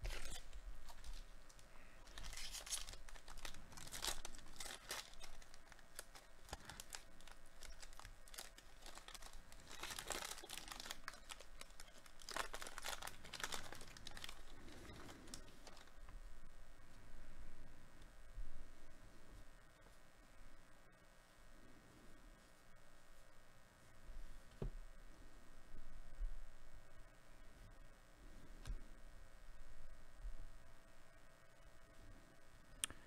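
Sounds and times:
wrapper tearing and crinkling: 0.0 - 15.9.

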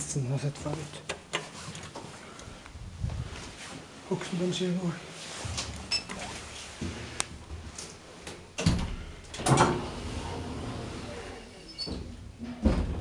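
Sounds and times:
elevator doors sliding shut: 8.6 - 13.0.

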